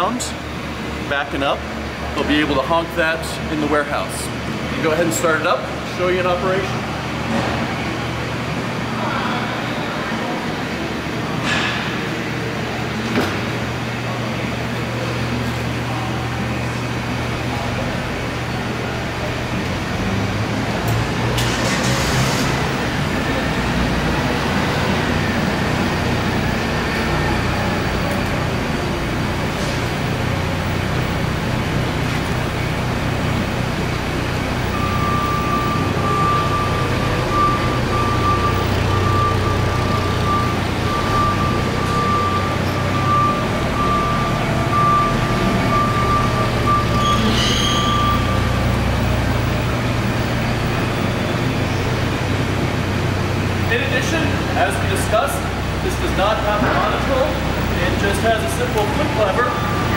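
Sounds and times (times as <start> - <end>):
forklift engine running: 0.0 - 59.9
reverse alarm beeping: 34.6 - 48.8, 56.3 - 59.9.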